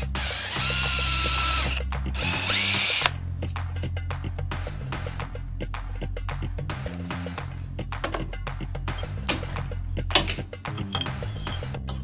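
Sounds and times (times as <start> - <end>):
electric drill boring metal: 0.0 - 3.2
background music: 0.0 - 12.0.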